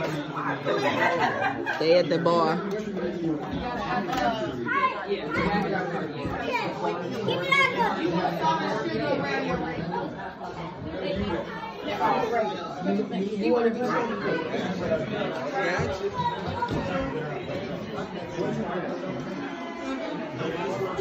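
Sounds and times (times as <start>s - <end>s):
overlapping chatter: 0.0s - 21.0s.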